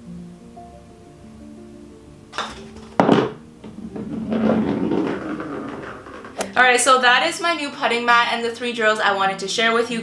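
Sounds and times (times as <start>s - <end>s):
putter striking golf ball: 2.4s - 6.6s
ball rolling over mat: 2.4s - 6.7s.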